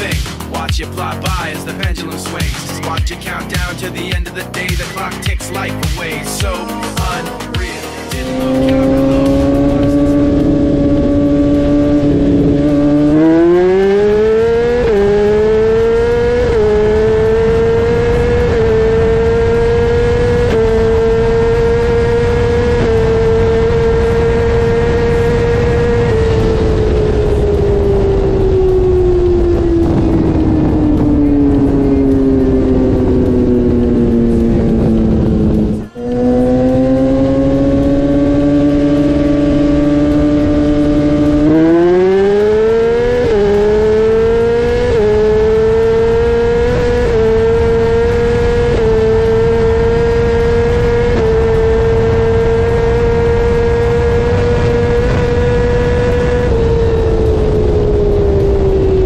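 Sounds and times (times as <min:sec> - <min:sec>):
motorcycle engines accelerating: 0:00.0 - 0:59.0.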